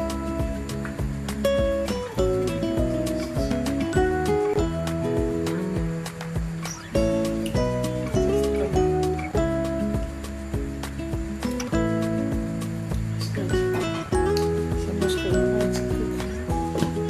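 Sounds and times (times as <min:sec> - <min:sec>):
background music with a beat: 0:00.0 - 0:17.0.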